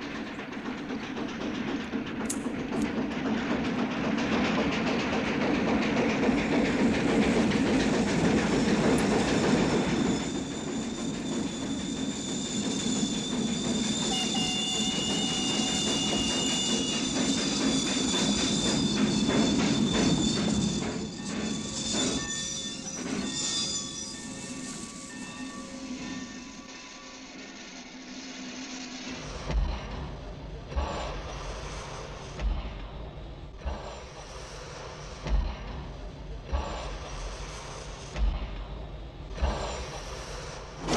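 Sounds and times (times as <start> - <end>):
steam train rumble and clatter: 0.0 - 40.9
high wheel squeal: 8.1 - 29.3.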